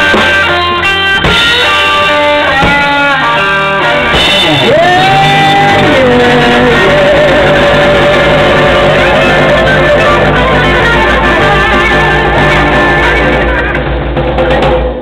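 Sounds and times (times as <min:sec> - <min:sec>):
bass guitar: 0:00.0 - 0:15.0
drums: 0:00.0 - 0:15.0
electric guitar lead: 0:00.0 - 0:15.0.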